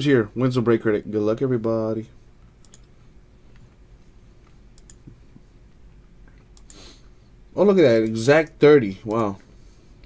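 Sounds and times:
computer mouse clicks: 0:02.6 - 0:03.7, 0:04.4 - 0:05.2, 0:06.3 - 0:06.8.

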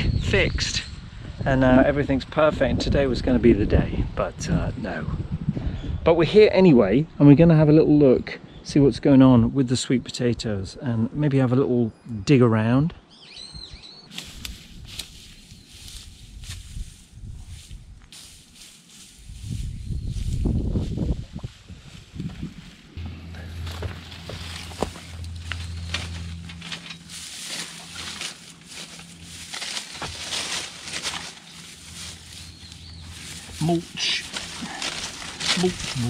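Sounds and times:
dry straw rustling and crackling: 0:14.1 - 0:36.0
steady low hum: 0:21.7 - 0:36.0.

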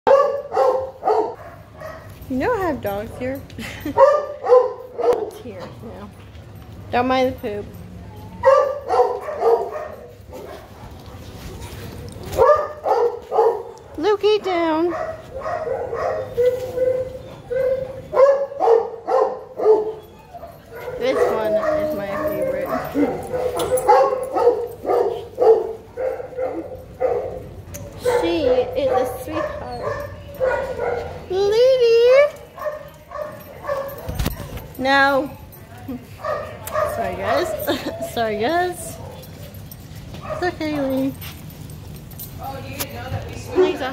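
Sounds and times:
small dogs yipping: 0:00.1 - 0:02.2, 0:08.0 - 0:14.1, 0:14.9 - 0:31.4, 0:32.1 - 0:41.5
small dogs yapping: 0:14.9 - 0:31.3
dog whining: 0:15.9 - 0:18.3, 0:19.8 - 0:24.0.

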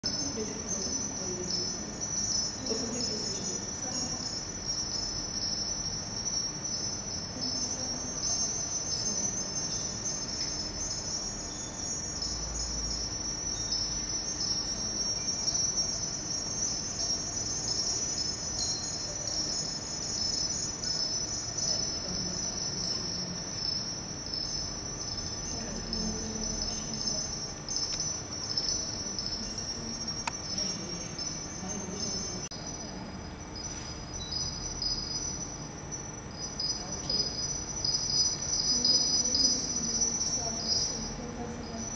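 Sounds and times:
high-pitched shimmering chirr: 0:00.0 - 0:41.9.

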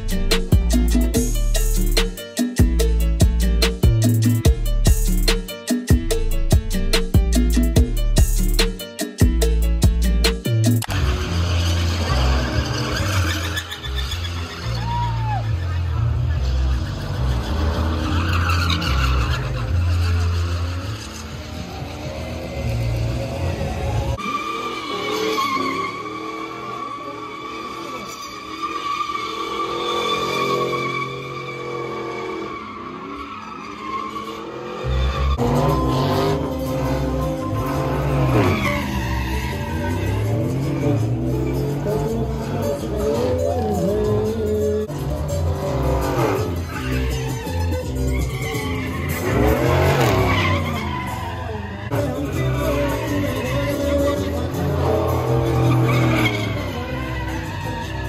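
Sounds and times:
music: 0:00.0 - 0:20.1, 0:35.1 - 0:58.0
truck engines running: 0:00.0 - 0:58.0
voices: 0:10.9 - 0:33.2, 0:33.9 - 0:58.0.

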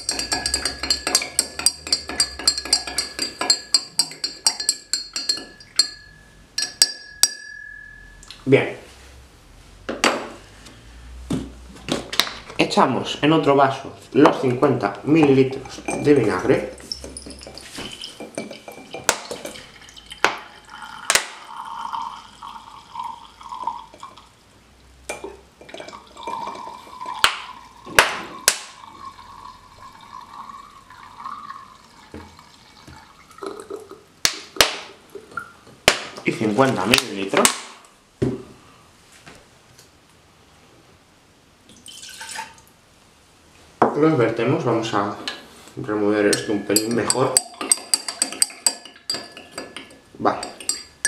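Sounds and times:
liquid trickling into glass: 0:00.0 - 0:08.3, 0:15.5 - 0:24.4, 0:25.1 - 0:34.0, 0:41.7 - 0:42.7.

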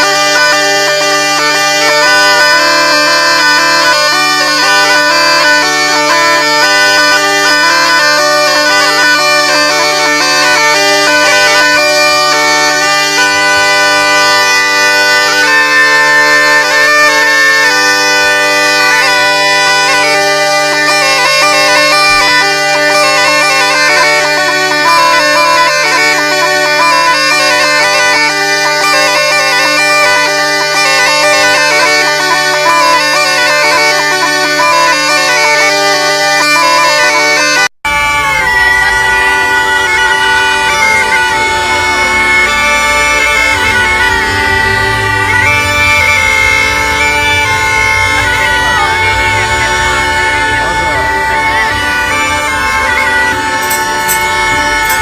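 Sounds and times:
bagpipe music: 0:00.0 - 0:55.0.

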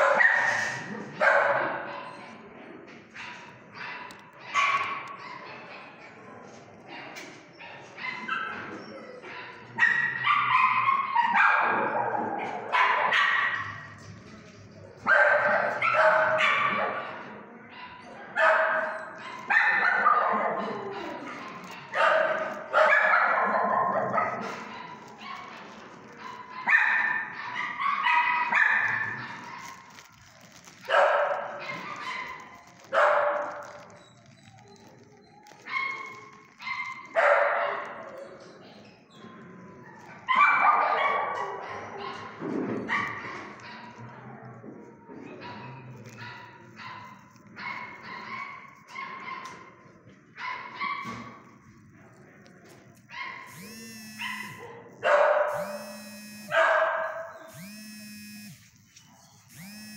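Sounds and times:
dogs barking and yipping: 0:00.0 - 0:02.5, 0:03.1 - 0:14.1, 0:15.0 - 0:44.4, 0:45.2 - 0:51.6, 0:53.0 - 0:59.9.

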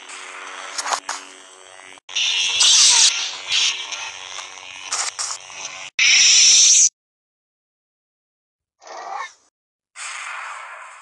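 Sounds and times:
lightsaber humming: 0:00.0 - 0:06.9.

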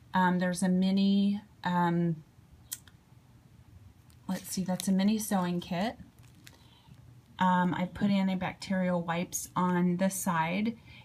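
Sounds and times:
plastic pouch pages clicking: 0:04.1 - 0:07.0.

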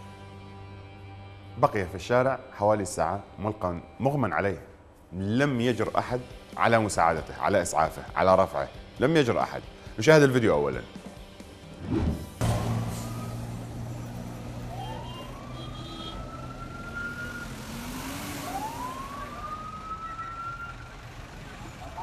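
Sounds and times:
street traffic: 0:10.8 - 0:22.0
truck engine running: 0:12.3 - 0:22.0
siren rising in pitch: 0:12.7 - 0:21.0, 0:21.6 - 0:22.0.

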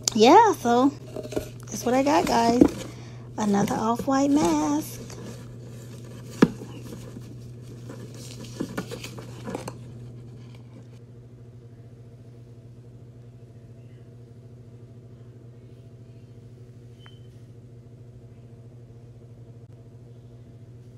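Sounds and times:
steady low hum: 0:00.0 - 0:20.9
plastic packaging rustling: 0:01.0 - 0:10.4.

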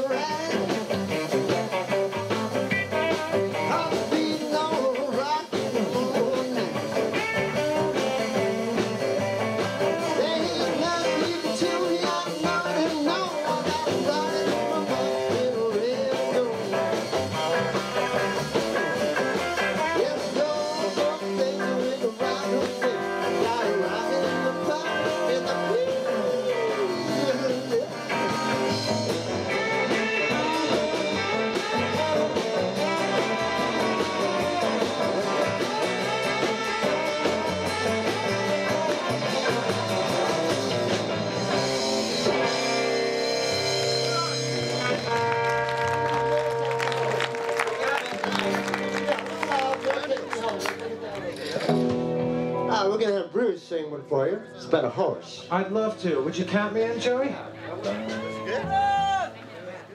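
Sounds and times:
rock band playing: 0:00.0 - 0:59.9
vocal shout: 0:57.8 - 0:59.5.

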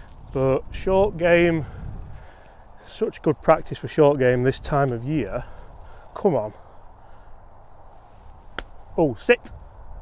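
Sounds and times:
golf club striking ball: 0:08.5 - 0:08.8.

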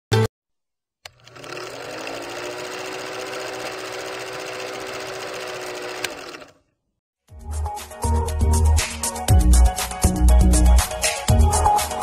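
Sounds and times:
film projector whirring: 0:01.1 - 0:06.6.

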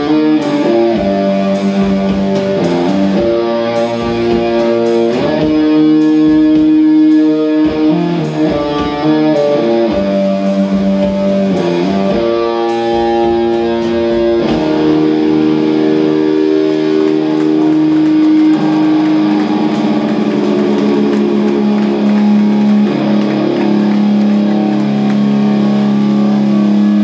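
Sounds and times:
electric guitar chords: 0:00.0 - 0:27.0.

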